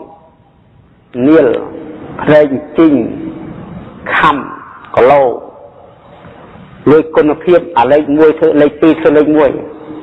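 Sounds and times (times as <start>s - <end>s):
man preaching: 1.1s - 3.4s, 4.0s - 5.7s, 6.8s - 10.0s.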